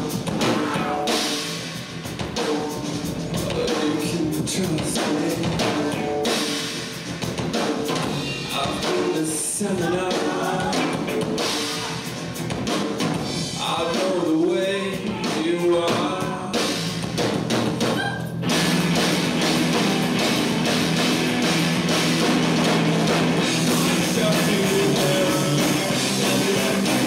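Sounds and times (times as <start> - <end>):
live rock band: 0.0 - 27.0
person singing: 3.3 - 6.4, 8.5 - 12.1, 13.6 - 16.8, 19.5 - 20.8, 23.4 - 27.0.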